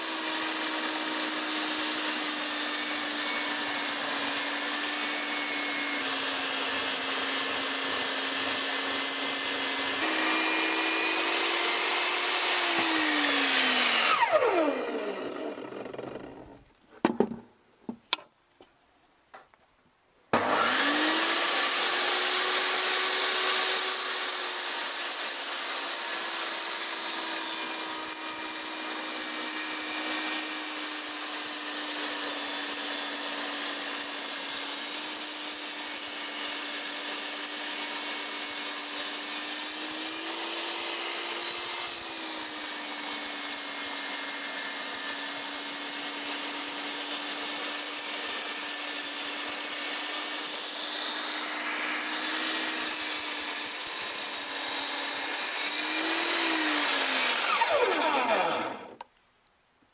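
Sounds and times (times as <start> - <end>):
saw starting up whine: 0.0 - 16.6, 20.3 - 59.1
saw winding down whine: 0.0 - 16.6, 20.3 - 59.1
table saw ripping wood: 0.0 - 18.3, 20.3 - 59.1
knocks: 17.0 - 18.3.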